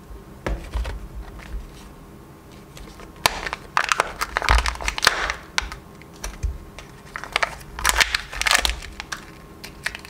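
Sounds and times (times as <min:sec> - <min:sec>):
seal peeling off plastic: 0:02.8 - 0:10.0.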